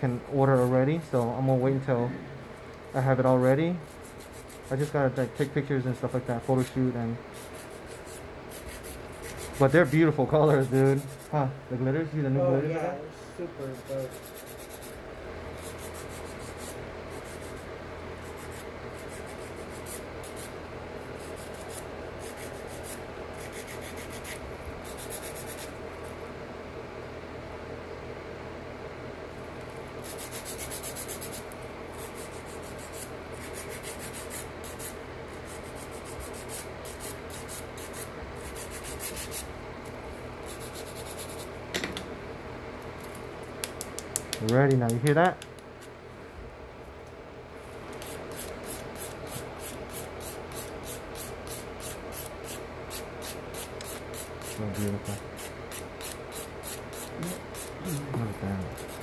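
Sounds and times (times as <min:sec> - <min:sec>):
steady low hum: 0:00.0 - 0:59.0
nail file rasping: 0:03.8 - 0:11.4, 0:13.7 - 0:15.0, 0:15.6 - 0:25.8, 0:30.0 - 0:39.5, 0:40.4 - 0:41.5, 0:47.9 - 0:59.0.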